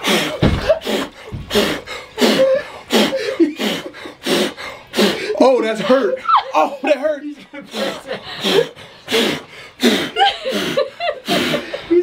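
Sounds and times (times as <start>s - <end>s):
man exhaling forcefully: 0.0s - 5.4s.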